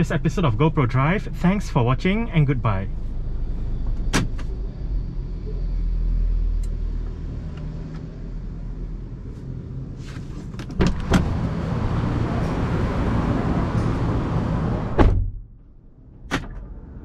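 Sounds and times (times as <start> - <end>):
rush of outside noise: 0.0 - 17.0
car cabin rumble: 10.5 - 12.2, 14.2 - 17.0
car door knocks: 14.9 - 15.4.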